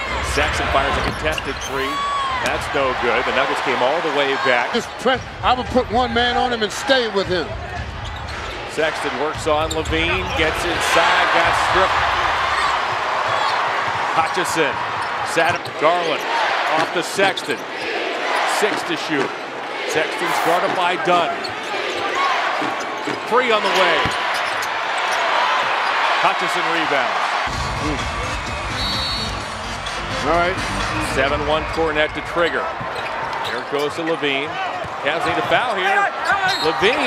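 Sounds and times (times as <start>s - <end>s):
arena crowd cheering: 0.0s - 37.0s
music with pounding bass beat: 27.5s - 31.1s.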